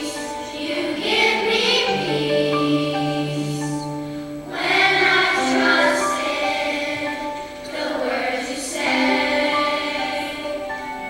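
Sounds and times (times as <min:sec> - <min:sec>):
girls' choir singing: 0:00.0 - 0:11.0.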